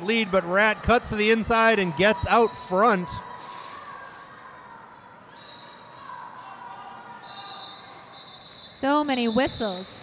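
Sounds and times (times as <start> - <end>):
rink hall noise: 0.0 - 10.0
referee whistle blasts: 7.2 - 10.0.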